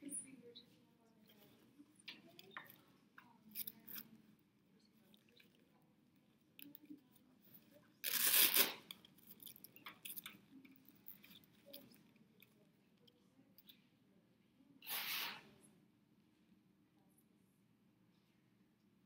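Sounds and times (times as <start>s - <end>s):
velcro strip rasping: 8.0s - 9.5s.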